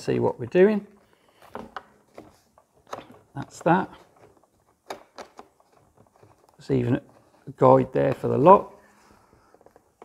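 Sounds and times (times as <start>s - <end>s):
hard plastic parts clicking: 1.0s - 8.6s.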